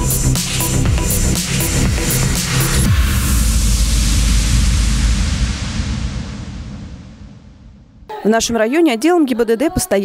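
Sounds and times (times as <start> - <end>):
loud rushing noise: 1.5 - 8.1
deep rumble: 1.7 - 8.1.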